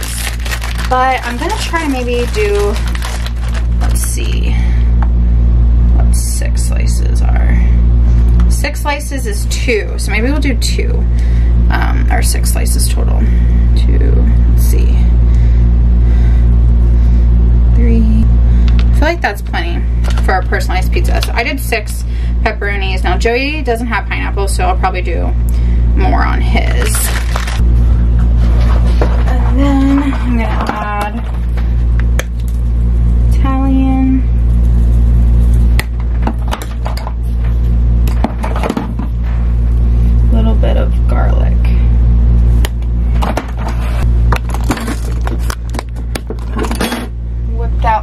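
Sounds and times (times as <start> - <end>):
loud steady low hum: 0.0 - 48.0.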